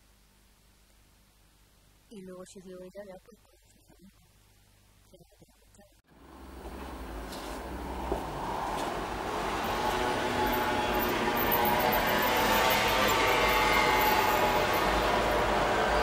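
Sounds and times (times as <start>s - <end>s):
road traffic noise: 6.1s - 16.0s.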